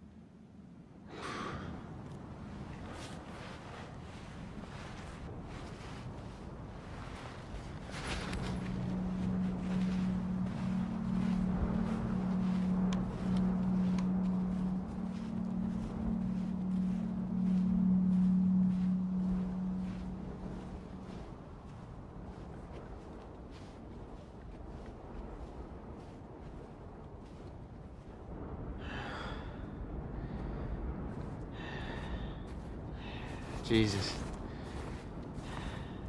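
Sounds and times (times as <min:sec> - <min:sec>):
steady low drone: 0:00.8 - 0:36.0
footsteps crunching through snow: 0:02.8 - 0:27.6, 0:32.1 - 0:36.0.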